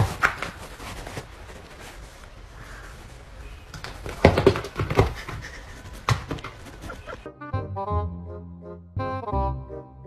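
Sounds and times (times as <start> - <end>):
cats scuffling: 0.0 - 7.3.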